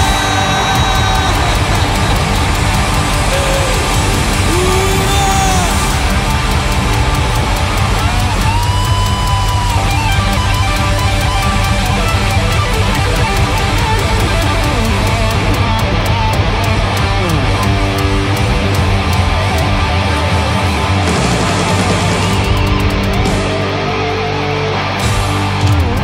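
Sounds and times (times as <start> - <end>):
electric guitar playing: 0.0 - 26.0
instrumental rock music: 0.0 - 26.0.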